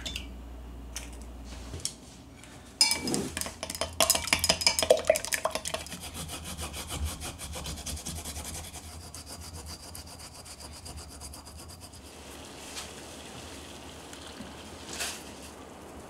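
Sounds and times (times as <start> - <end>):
whisk clinking in glass cup: 2.8 - 6.0
ginger rasping on metal grater: 5.7 - 12.1.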